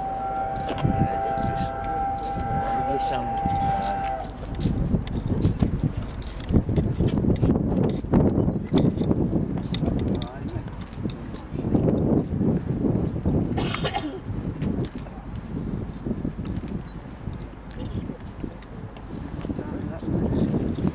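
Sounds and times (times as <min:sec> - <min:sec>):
people talking: 0:00.7 - 0:01.7, 0:02.6 - 0:03.6, 0:19.5 - 0:20.6.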